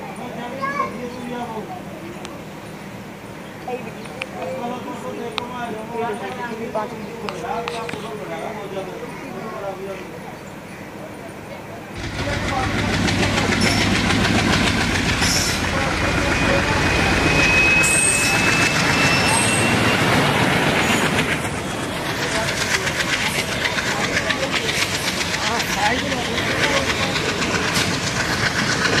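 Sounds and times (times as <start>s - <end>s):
train running noise: 0.0s - 29.0s
wheels clattering over track: 12.0s - 16.5s
faint thin squeal: 16.2s - 20.2s.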